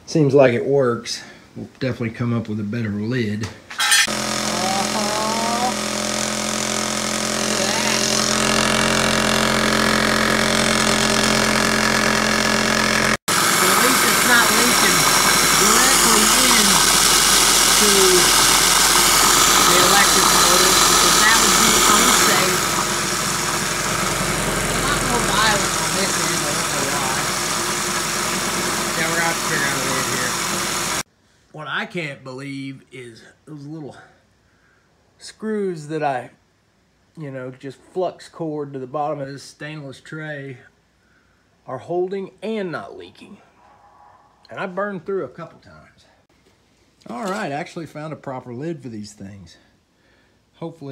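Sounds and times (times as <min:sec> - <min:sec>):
metal tray buzzing and rattling: 0:03.8 - 0:31.0
electric sander running: 0:04.0 - 0:31.1.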